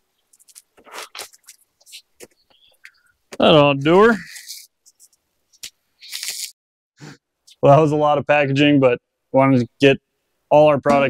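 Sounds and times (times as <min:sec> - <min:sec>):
plastic packaging crinkling: 0:00.3 - 0:02.4
person speaking: 0:03.3 - 0:05.1, 0:06.0 - 0:06.5, 0:07.5 - 0:11.0.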